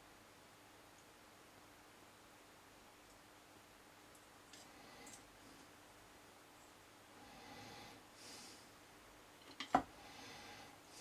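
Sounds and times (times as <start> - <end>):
soft breathing through nose: 4.5 - 5.8, 7.1 - 8.8, 9.9 - 11.0.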